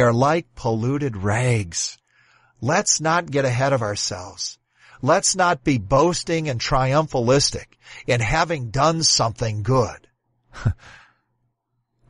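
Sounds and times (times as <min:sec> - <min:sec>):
man's breathy laugh: 0:10.5 - 0:11.2.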